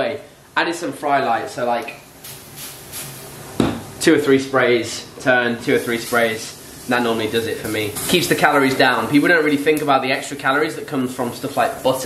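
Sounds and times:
steak sizzling in a frying pan: 0:02.2 - 0:03.4, 0:05.7 - 0:12.0.

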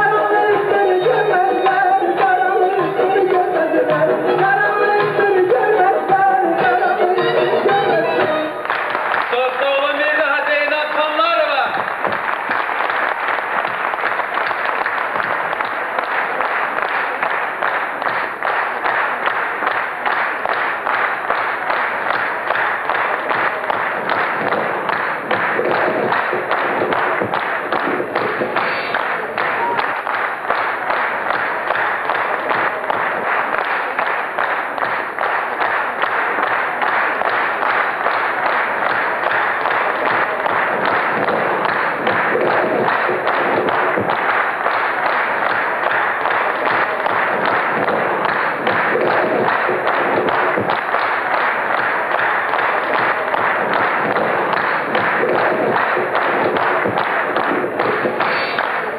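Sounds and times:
audience applauding: 0:00.0 - 0:58.9.

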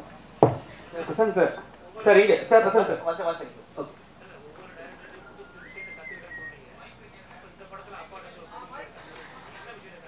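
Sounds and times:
room murmur: 0:00.0 - 0:10.0
thin whistle-like tone: 0:04.6 - 0:06.8.

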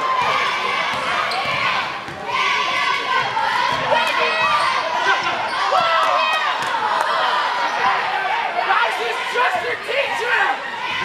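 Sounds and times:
crowd chatter and shouts: 0:00.0 - 0:11.0.

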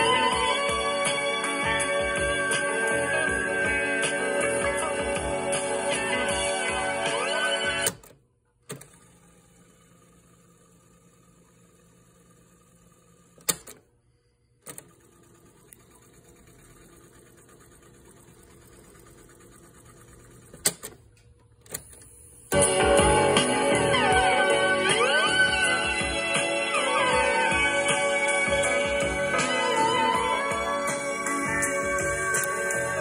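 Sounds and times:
cassette tape music playing: 0:00.0 - 0:13.8, 0:14.7 - 0:33.0.

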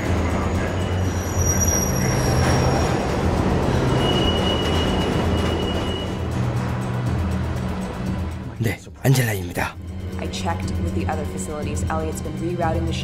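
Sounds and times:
subway train rumbling: 0:00.0 - 0:08.5
high thin wheel squeals: 0:00.3 - 0:06.3.

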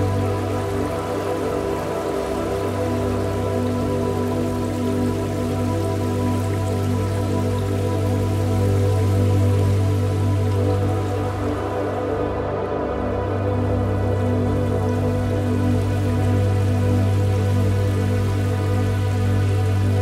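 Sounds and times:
ambient meditation music: 0:00.0 - 0:20.0
low drone: 0:00.0 - 0:20.0.

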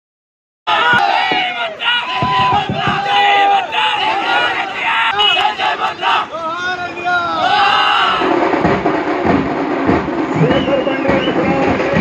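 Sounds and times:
men shouting slogans: 0:00.7 - 0:08.3.

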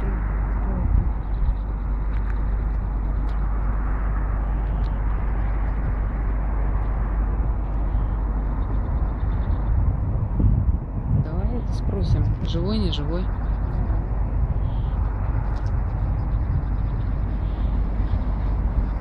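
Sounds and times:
low roadside rumble: 0:00.0 - 0:19.0.

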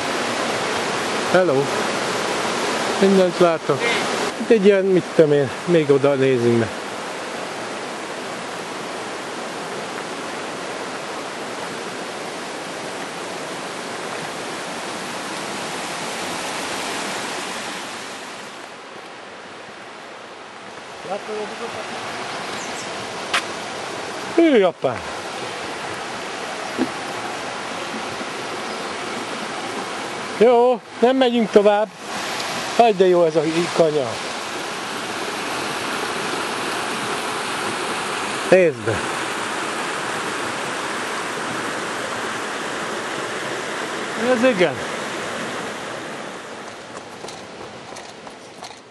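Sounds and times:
stream flowing over rocks: 0:00.0 - 0:48.9.

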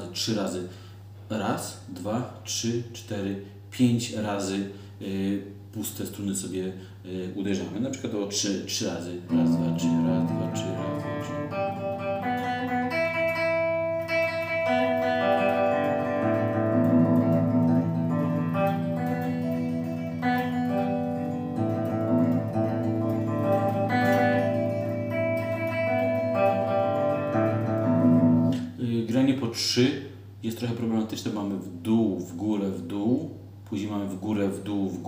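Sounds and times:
electric guitar strings picked: 0:09.3 - 0:28.8.

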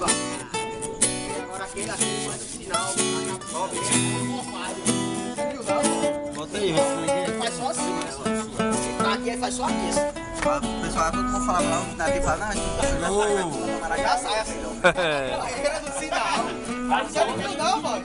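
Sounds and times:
acoustic guitar music: 0:00.0 - 0:18.0.

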